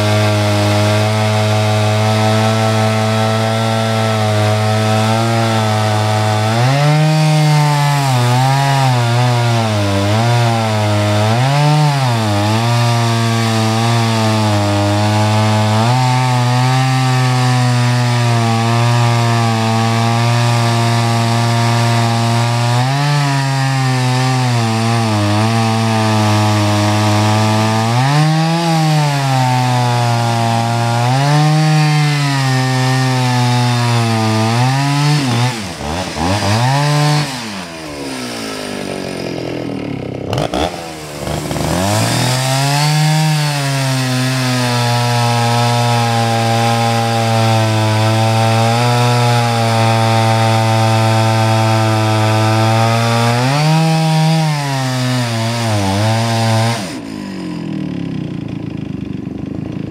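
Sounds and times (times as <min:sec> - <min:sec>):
chainsaw cutting through log: 0:00.0 - 0:59.9.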